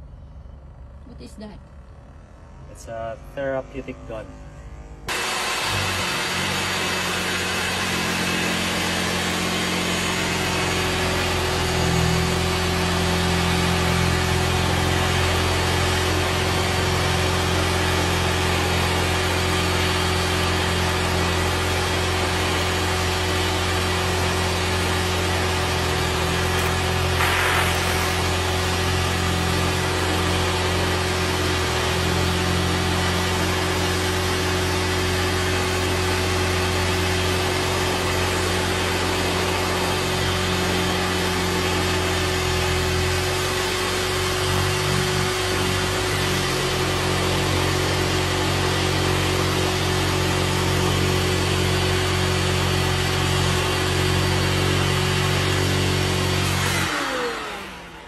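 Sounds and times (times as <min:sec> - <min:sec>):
vacuum cleaner suction hiss: 0:05.1 - 0:10.4, 0:26.4 - 0:29.8.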